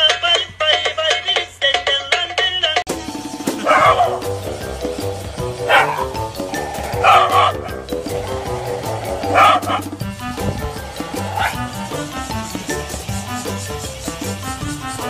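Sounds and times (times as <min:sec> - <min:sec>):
music with steady beat: 0:00.0 - 0:15.0
dogs barking: 0:03.6 - 0:12.9.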